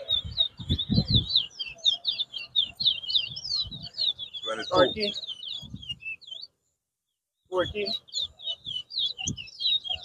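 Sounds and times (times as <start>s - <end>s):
finch twittering song: 0.0s - 6.8s, 7.4s - 10.0s.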